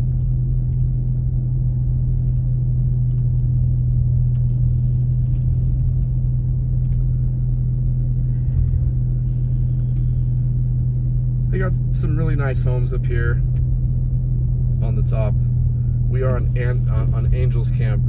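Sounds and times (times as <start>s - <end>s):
car engine and road rumble: 0.0s - 18.0s.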